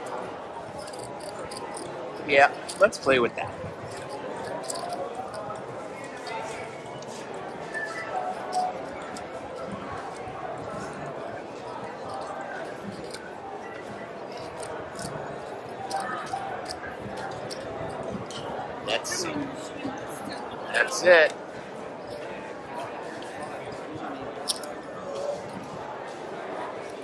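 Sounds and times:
clay chips clicking: 0:00.0 - 0:03.0, 0:03.9 - 0:06.5, 0:07.4 - 0:10.3, 0:11.7 - 0:13.3, 0:14.3 - 0:18.4, 0:24.4 - 0:24.8
faint voices chattering: 0:00.0 - 0:27.0.

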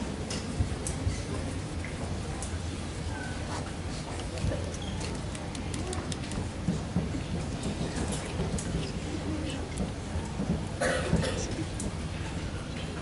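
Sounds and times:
audience chatter: 0:00.0 - 0:13.0.

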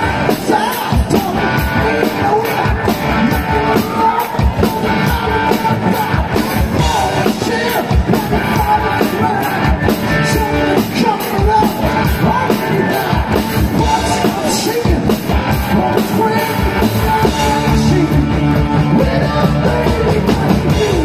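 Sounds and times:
person singing: 0:00.0 - 0:21.0
rock band playing: 0:00.0 - 0:21.0
steady drum beat: 0:00.0 - 0:21.0.

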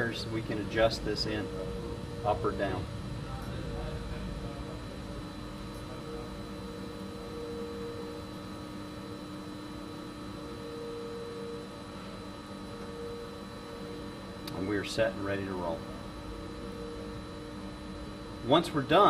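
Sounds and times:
steady machine hum: 0:00.0 - 0:19.0.

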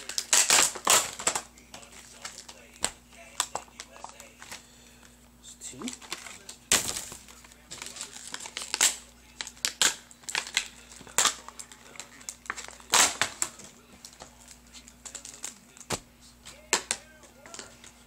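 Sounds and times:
plastic packaging crinkling: 0:00.0 - 0:04.7, 0:05.8 - 0:18.0.

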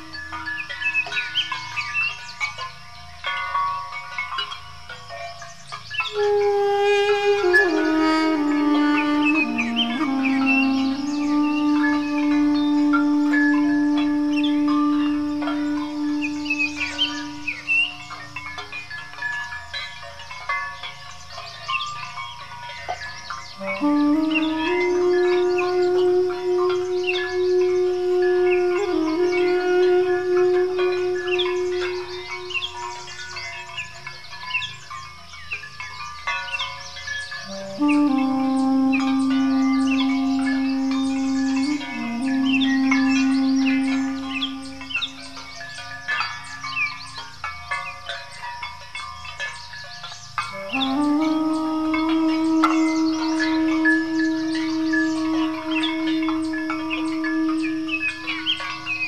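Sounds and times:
duduk playing held notes: 0:00.0 - 0:00.6, 0:06.1 - 0:18.4, 0:23.5 - 0:33.1, 0:37.4 - 0:45.5, 0:50.5 - 0:59.0
birds chirping: 0:00.0 - 0:59.0.

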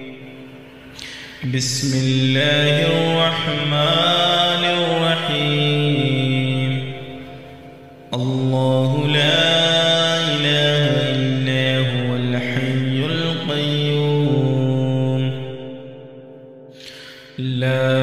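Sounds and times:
man chanting melodically: 0:00.0 - 0:16.0, 0:16.8 - 0:18.0.

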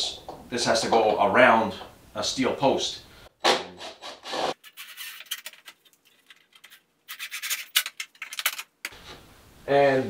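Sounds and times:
scratchy rubbing on plywood: 0:03.8 - 0:05.0.

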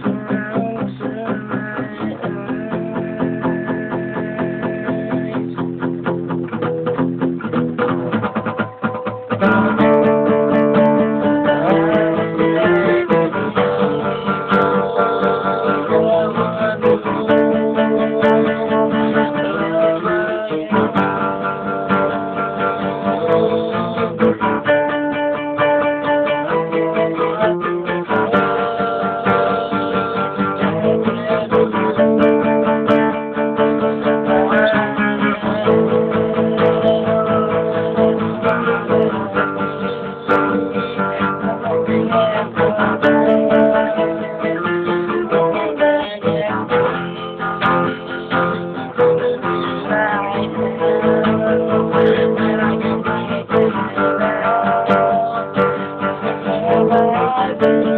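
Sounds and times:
acoustic guitar solo: 0:00.0 - 0:57.9.

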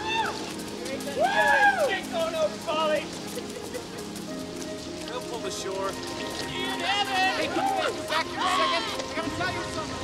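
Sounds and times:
voices shouting: 0:00.0 - 0:03.0, 0:06.0 - 0:10.0
orchestral music: 0:00.0 - 0:10.0
river rapids rushing: 0:00.0 - 0:10.0.

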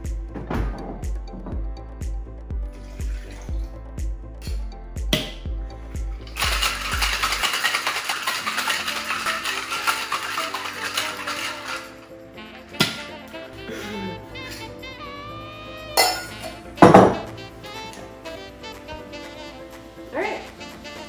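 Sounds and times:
background music with steady beat: 0:00.0 - 0:21.0
ice rattling in metal shaker: 0:06.2 - 0:12.1.

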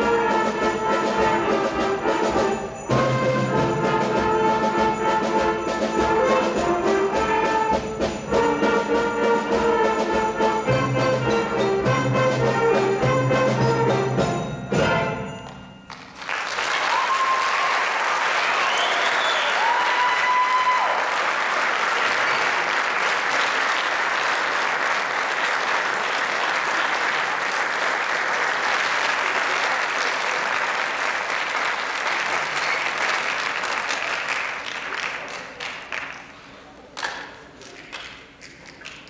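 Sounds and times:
audience applause: 0:15.9 - 0:39.0.

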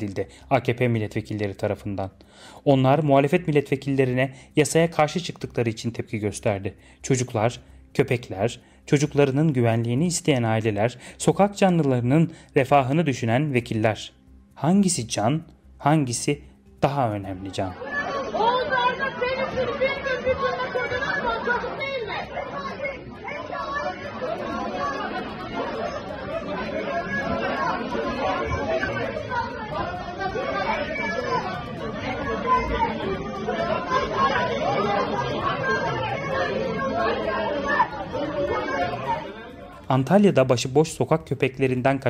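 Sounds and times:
overlapping crowd voices: 0:17.7 - 0:40.2.

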